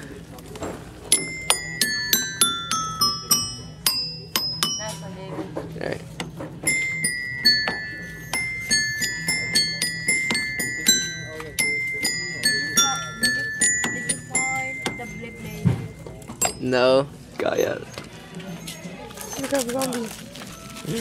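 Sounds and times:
toy xylophone struck with mallet: 1.1 - 5.1, 6.2 - 16.8.

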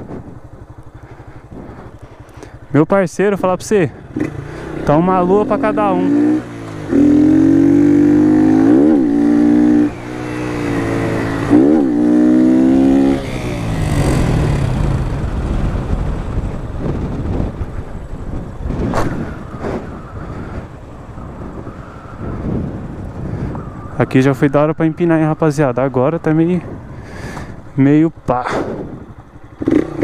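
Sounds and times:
motorcycle engine revving: 0.0 - 30.0
wind rush: 5.2 - 29.9.

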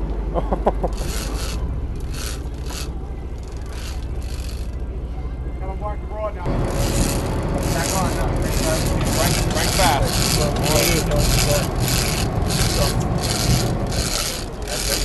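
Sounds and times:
low boat rumble: 0.0 - 15.0
fishing reel rasping: 0.8 - 4.8, 6.6 - 15.0.

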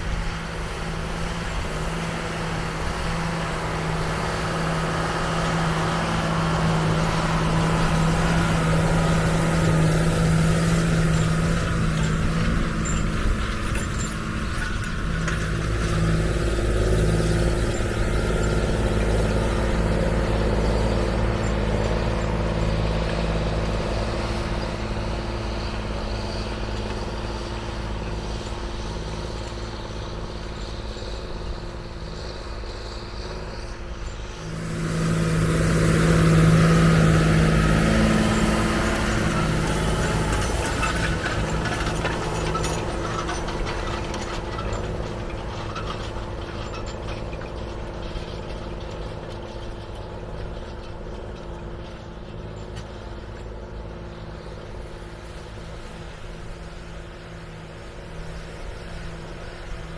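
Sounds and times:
tractor engine running under load: 0.0 - 59.9.

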